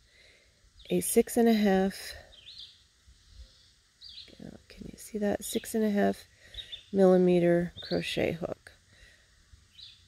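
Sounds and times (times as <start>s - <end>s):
faint bird chirp: 2.1s - 8.6s, 9.6s - 10.0s.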